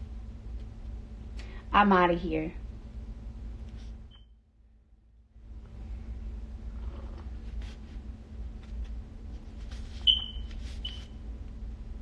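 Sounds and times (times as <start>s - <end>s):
high-pitched electronic beeps: 10.1s - 11.1s.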